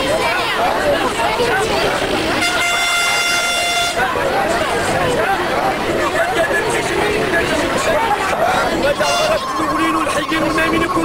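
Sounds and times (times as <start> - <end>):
crowd chatter: 0.0 - 11.0
vehicle horn blast: 2.4 - 4.0, 9.0 - 9.5.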